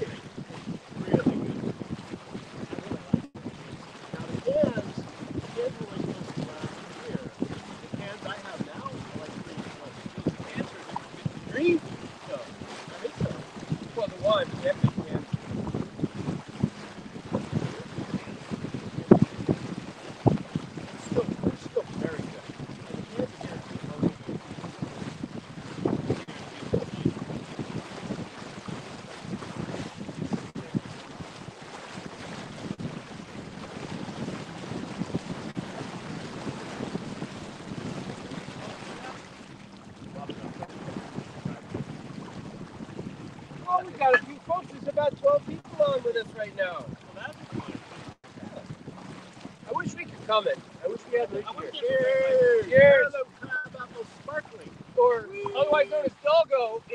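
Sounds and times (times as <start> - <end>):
water splashing along hull: 0.0 - 56.9
wind buffeting microphone: 0.0 - 56.9.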